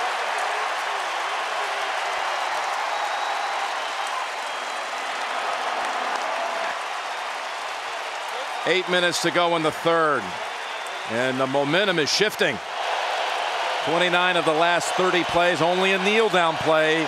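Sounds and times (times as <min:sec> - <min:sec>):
stadium crowd cheering and applauding: 0:00.0 - 0:17.0.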